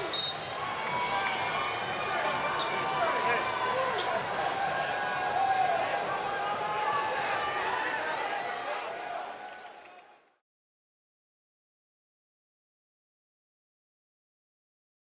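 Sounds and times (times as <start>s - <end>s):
arena crowd voices: 0.0s - 10.4s.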